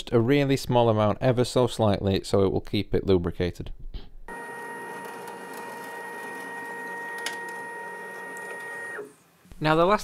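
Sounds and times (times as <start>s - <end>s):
stepper motor whine: 4.3s - 9.2s.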